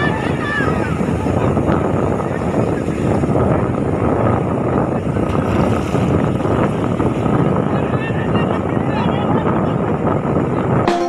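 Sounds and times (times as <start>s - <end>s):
wind on microphone: 0.0s - 10.9s
surf breaking: 4.9s - 9.0s.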